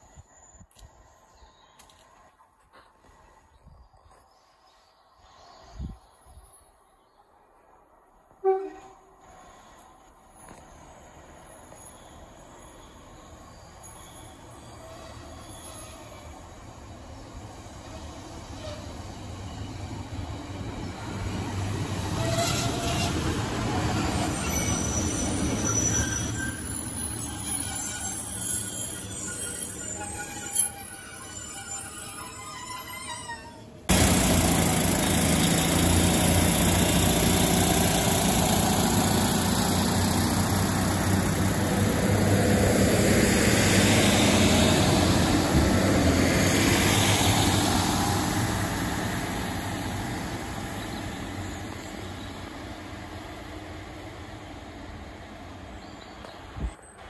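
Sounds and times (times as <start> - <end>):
train passing close by: 0.0 - 57.0
diesel train running: 6.7 - 57.0.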